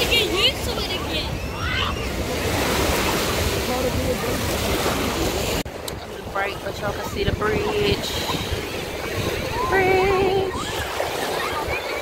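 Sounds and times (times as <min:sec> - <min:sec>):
small waves lapping: 0:00.0 - 0:12.0
wind rumbling on microphone: 0:00.0 - 0:12.0.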